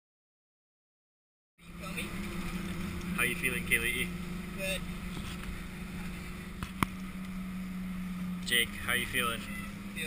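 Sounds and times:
bus engine droning: 1.6s - 10.0s.

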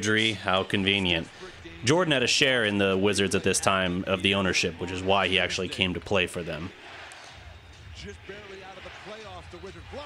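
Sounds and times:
announcer speaking: 0.0s - 6.7s, 7.9s - 10.0s.

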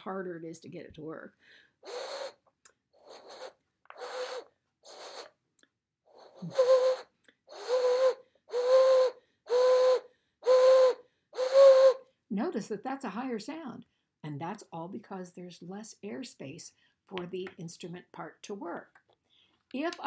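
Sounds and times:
airy breath puffs: 1.4s - 5.4s, 6.1s - 11.9s
bottle hooting notes: 3.0s - 5.3s, 6.2s - 12.0s.

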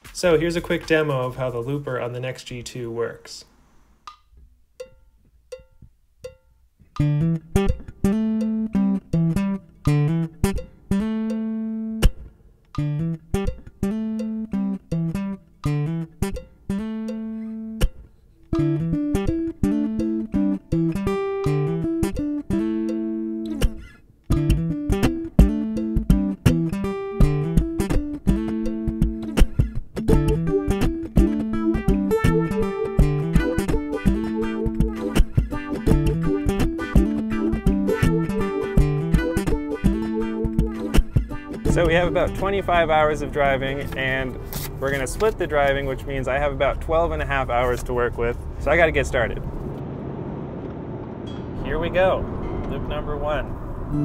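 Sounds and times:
looped guitar melody: 4.8s - 47.7s, 51.3s - 54.0s.

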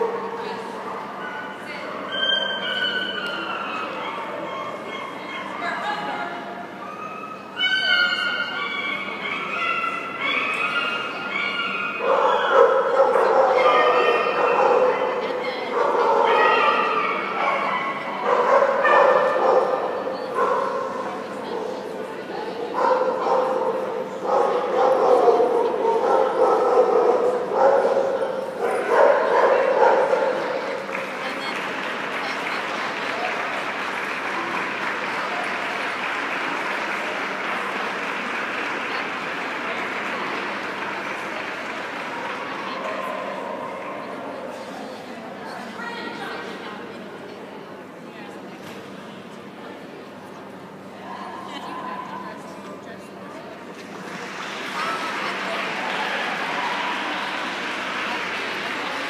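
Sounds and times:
steady hall noise: 0.0s - 59.0s.

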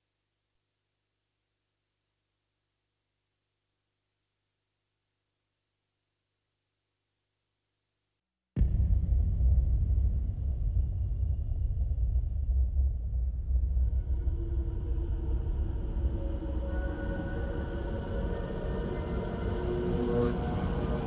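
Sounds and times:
deep steady rumble: 8.6s - 19.0s.

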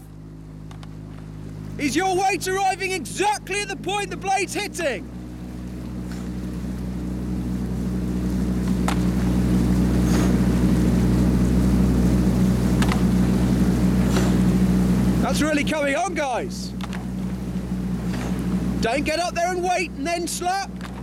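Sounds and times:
motorboat engine running: 0.0s - 21.0s.

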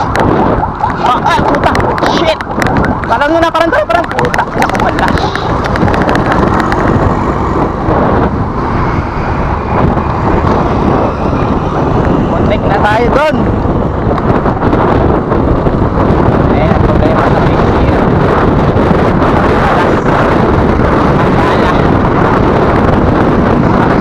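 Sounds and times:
road traffic noise: 0.0s - 24.0s
wind buffeting microphone: 0.0s - 24.0s.

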